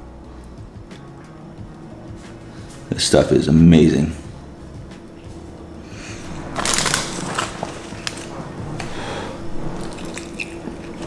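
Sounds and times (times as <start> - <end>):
faint room hum: 0.0 - 11.0
food packaging crinkling: 6.3 - 8.4, 9.8 - 11.0.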